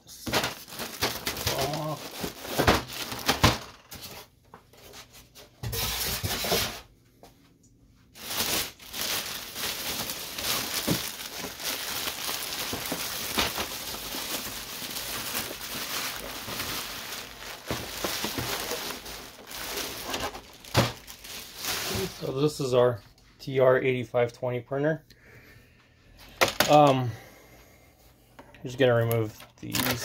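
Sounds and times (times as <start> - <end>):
plastic bag crinkling: 0.2 - 4.0, 8.2 - 22.5.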